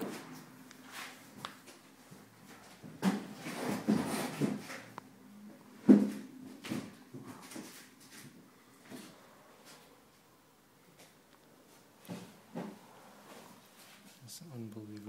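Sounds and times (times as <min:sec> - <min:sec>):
rubbing and bumping handling noise: 0:00.0 - 0:05.0.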